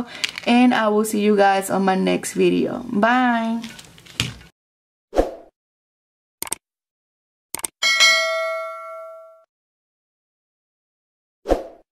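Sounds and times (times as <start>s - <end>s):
bell-like notification ding: 7.8s - 9.5s.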